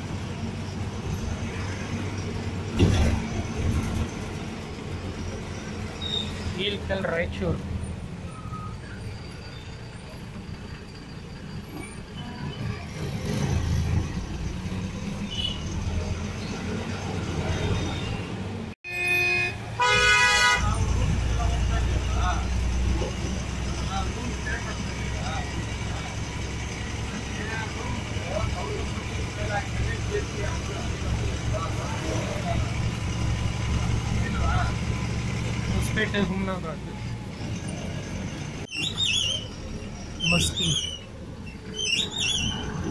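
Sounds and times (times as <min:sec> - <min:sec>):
bus engine running: 0:00.0 - 0:42.9
road rumble: 0:00.0 - 0:42.9
bus horn: 0:18.8 - 0:20.9.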